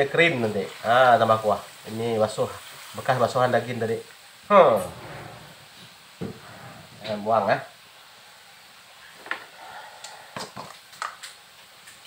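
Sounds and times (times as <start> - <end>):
curry simmering in a wok: 0.0 - 12.0
short low sound: 4.7 - 6.6.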